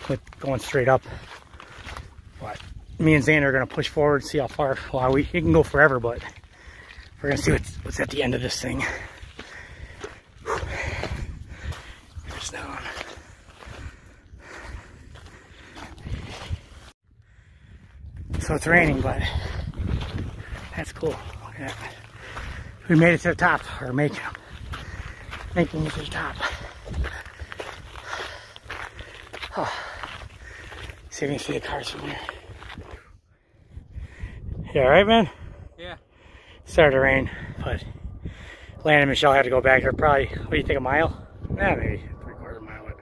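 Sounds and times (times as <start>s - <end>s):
footsteps on rocky trail: 0.0s - 17.0s, 17.7s - 33.2s
wind rumble on microphone: 1.0s - 43.0s
heavy breathing: 6.2s - 7.2s, 8.7s - 18.1s, 19.2s - 23.0s, 23.6s - 31.1s, 32.0s - 34.6s, 35.3s - 36.7s, 37.3s - 38.8s.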